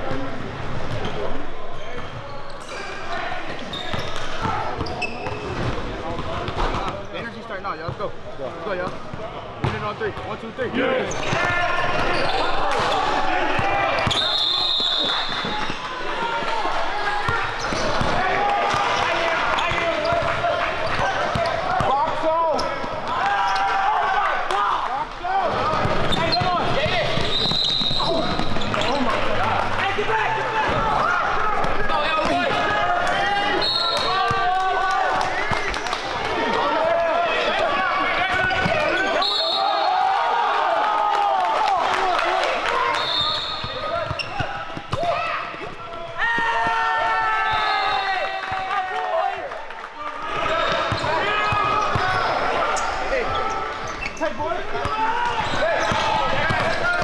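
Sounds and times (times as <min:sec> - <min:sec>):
hubbub of voices: 0:00.0 - 0:57.0
sneakers squeaking: 0:00.1 - 0:08.0, 0:08.8 - 0:16.0, 0:17.2 - 0:23.8, 0:25.5 - 0:29.8, 0:30.6 - 0:34.4, 0:37.9 - 0:39.9, 0:42.9 - 0:46.8, 0:50.4 - 0:57.0.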